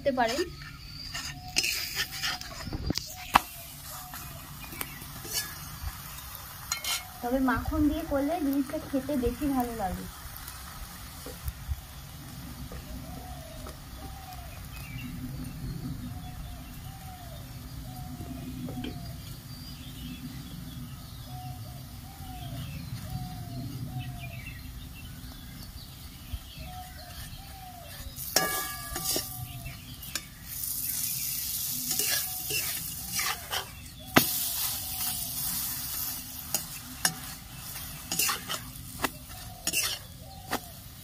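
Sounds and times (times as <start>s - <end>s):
metal spatula scraping pan: 0.0s - 4.4s, 5.1s - 5.8s, 6.7s - 7.2s, 27.0s - 40.6s
flatbread sizzling in oil: 0.0s - 41.0s.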